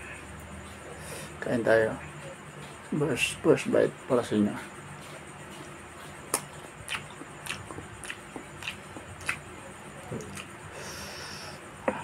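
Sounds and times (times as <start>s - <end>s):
low steady hum: 0.0s - 12.0s
chewing rice with mouth clicks: 5.1s - 10.7s.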